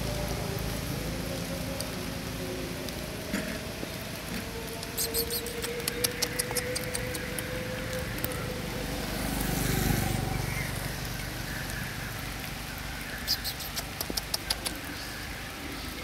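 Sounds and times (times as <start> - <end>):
vehicle passing: 0.0 - 15.7
sharp clicks: 4.8 - 7.5, 13.3 - 14.9.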